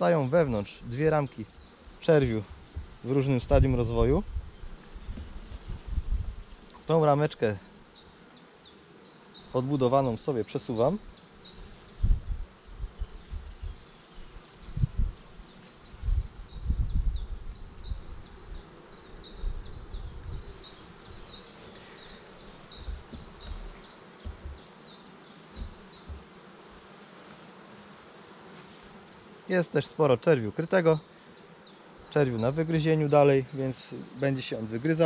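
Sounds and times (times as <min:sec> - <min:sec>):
honeybees buzzing: 0:00.0 - 0:35.0
wooden frames knocking: 0:22.8 - 0:24.7, 0:25.5 - 0:26.3.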